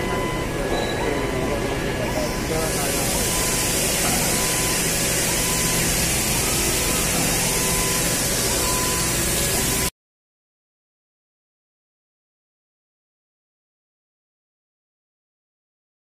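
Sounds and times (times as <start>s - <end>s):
faint voices: 0.0s - 4.5s
low machinery hum: 0.0s - 9.9s
loud high hiss of jet: 2.5s - 9.9s.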